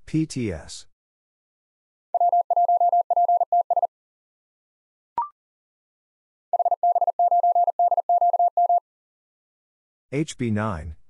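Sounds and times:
morse code beeps: 2.2s - 3.9s, 6.6s - 8.8s.

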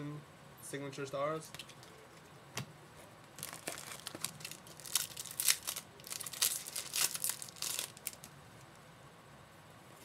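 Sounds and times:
card wrapper crinkling: 3.4s - 8.3s.

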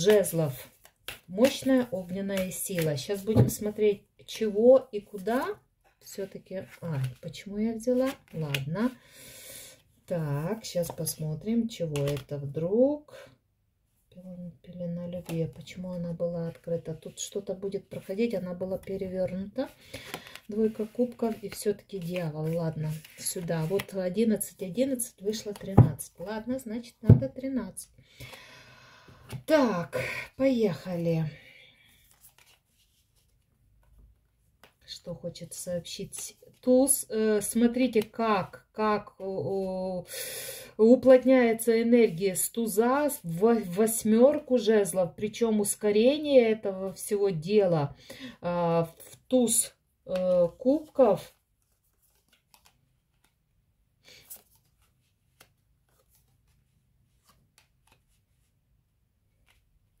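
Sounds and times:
cards being handled: 0.0s - 3.6s, 19.8s - 24.2s, 32.0s - 34.0s, 50.5s - 53.5s, 54.1s - 58.6s.

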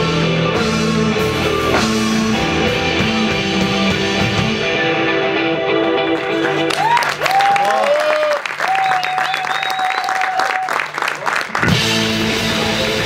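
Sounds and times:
rock band playing: 0.0s - 13.0s
audience applauding and cheering: 6.2s - 13.0s.

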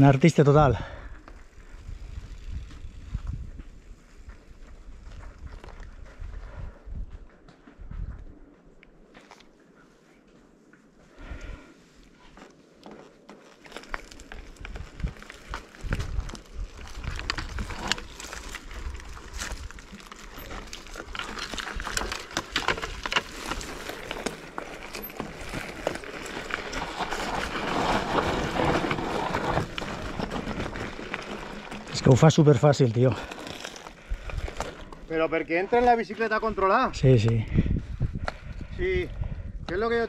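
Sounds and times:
tyres crunching over leaves and stones: 12.2s - 37.4s
bike clicks and rattles: 12.4s - 35.2s.

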